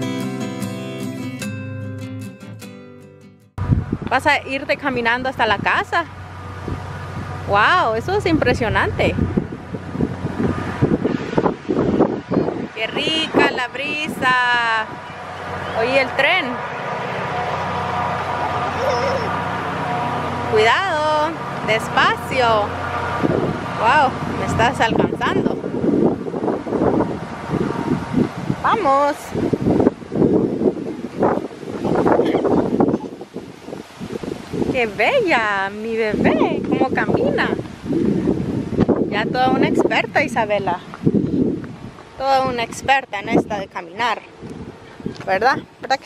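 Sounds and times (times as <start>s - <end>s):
wind buffeting microphone: 3.6s - 46.0s.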